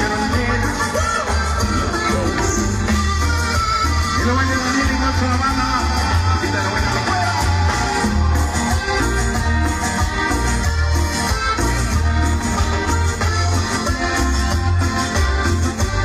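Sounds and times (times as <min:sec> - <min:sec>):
live band dance music: 0:00.0 - 0:16.0
pulsing bass line: 0:00.0 - 0:16.0.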